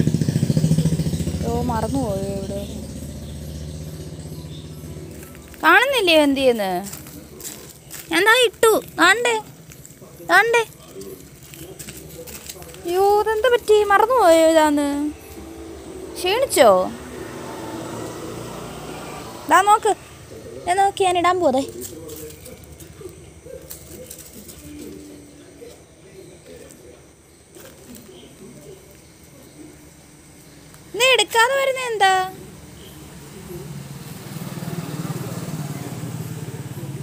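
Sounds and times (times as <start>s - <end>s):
passing vehicle engine drone: 0.0s - 7.4s, 13.2s - 23.6s, 32.1s - 37.0s
low background hum: 0.0s - 33.8s.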